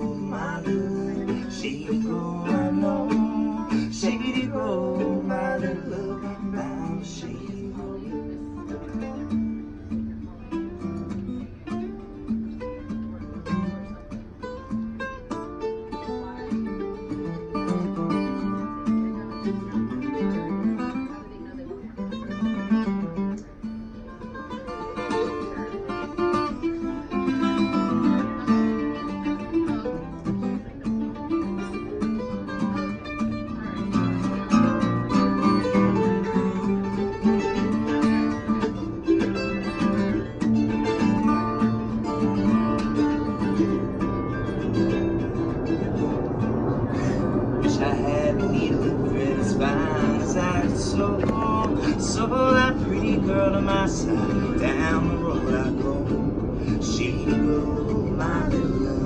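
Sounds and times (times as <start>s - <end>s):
acoustic guitar strumming: 0.0s - 59.0s
plucked stringed instrument: 0.0s - 59.0s.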